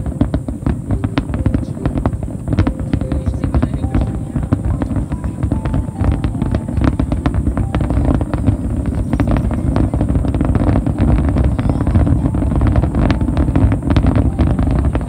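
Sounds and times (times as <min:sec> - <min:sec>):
fireworks cracks and pops: 0:00.0 - 0:15.0
fireworks rumble: 0:00.0 - 0:15.0.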